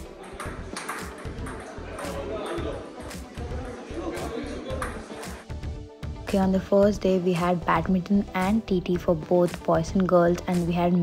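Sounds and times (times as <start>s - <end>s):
table tennis ball ticking: 0.2s - 2.8s.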